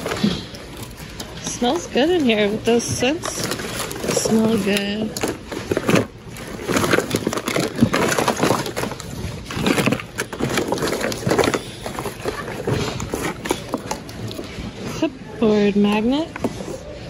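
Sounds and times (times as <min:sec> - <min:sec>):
rustling and crinkling of toys: 0:00.0 - 0:17.0.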